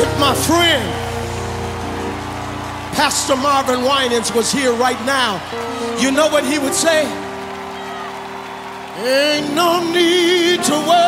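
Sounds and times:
gospel band music: 0:00.0 - 0:11.0.

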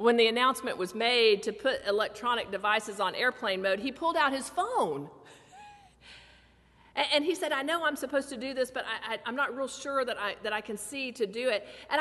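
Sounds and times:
woman speaking: 0:00.0 - 0:05.2, 0:07.0 - 0:12.0.

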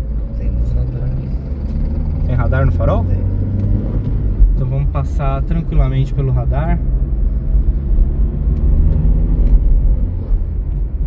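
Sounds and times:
car engine running: 0:00.0 - 0:11.0
road and tyre rumble: 0:00.0 - 0:11.0.

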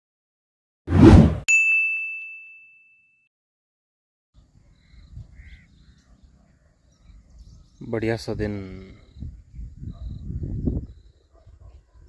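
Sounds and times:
short whoosh: 0:00.9 - 0:01.4
bright bell-like ding: 0:01.5 - 0:03.2.

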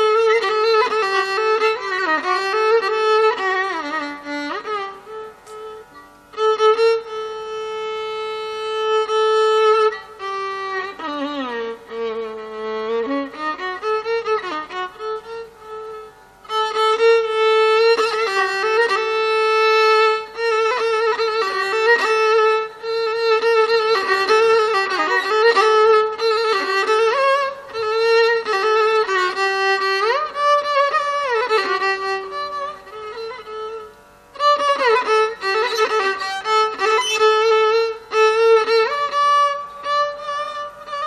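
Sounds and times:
bowed violin solo melody: 0:00.0 - 0:41.0.

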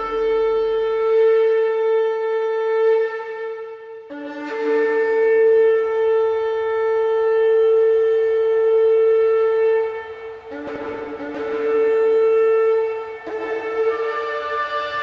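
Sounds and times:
long horn notes: 0:00.0 - 0:15.0.

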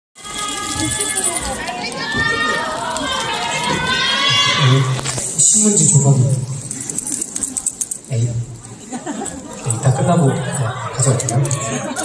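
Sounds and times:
crowd calling out and chattering: 0:00.2 - 0:12.0.

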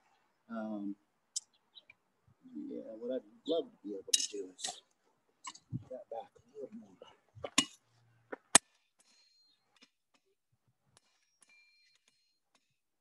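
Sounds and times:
faint light metal clinks: 0:09.0 - 0:10.3.

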